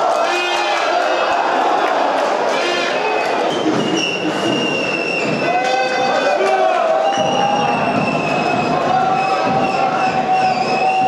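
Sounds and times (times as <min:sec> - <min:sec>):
stadium crowd noise: 0:00.0 - 0:11.0
high-pitched whistling tones: 0:02.9 - 0:06.1, 0:07.0 - 0:11.0.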